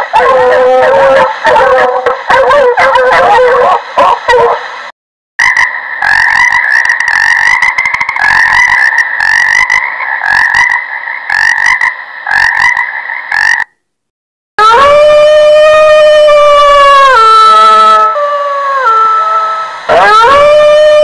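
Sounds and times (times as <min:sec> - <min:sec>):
wolf howling: 0:00.0 - 0:04.6, 0:14.6 - 0:21.0
chorus of frogs croaking: 0:05.4 - 0:13.8.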